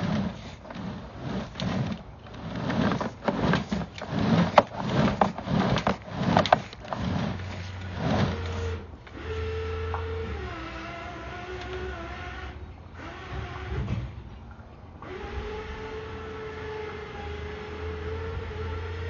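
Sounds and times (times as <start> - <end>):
small motor whining: 0.0 - 14.1, 15.0 - 19.0.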